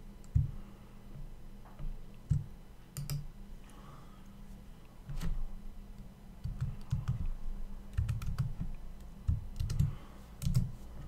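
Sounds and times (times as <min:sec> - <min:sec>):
typing on a computer keyboard: 0:02.3 - 0:03.2, 0:06.4 - 0:07.3, 0:07.9 - 0:10.7.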